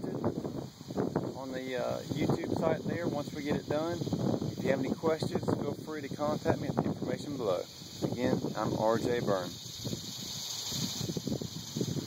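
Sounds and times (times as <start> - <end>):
steady high hiss: 0.0 - 12.0
wind on microphone: 0.0 - 12.0.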